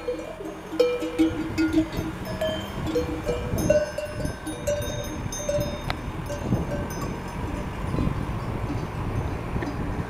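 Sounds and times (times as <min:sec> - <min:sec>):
sheep bells clanking: 0:00.0 - 0:10.0
steady low rumble: 0:00.0 - 0:10.0.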